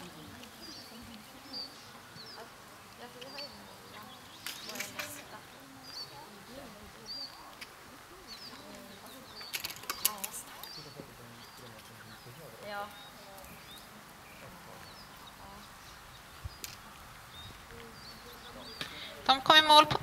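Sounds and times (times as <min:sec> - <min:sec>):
small birds chirping: 0:00.0 - 0:20.0.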